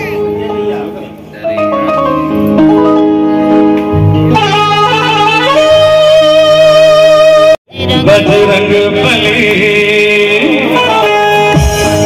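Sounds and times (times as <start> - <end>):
electronic keyboard melody: 0.0 - 12.0.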